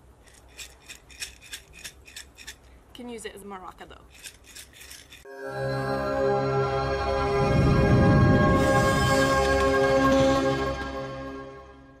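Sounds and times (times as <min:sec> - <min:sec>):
pasta rattling in glass jar: 0:00.2 - 0:02.7, 0:04.1 - 0:05.3.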